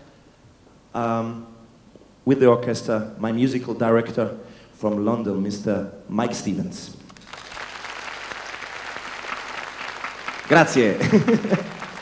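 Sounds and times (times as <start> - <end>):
audience applauding: 7.1 - 12.0.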